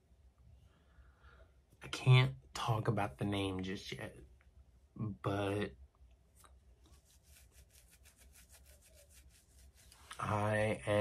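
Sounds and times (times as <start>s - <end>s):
fingers scratching beard: 6.8s - 10.3s.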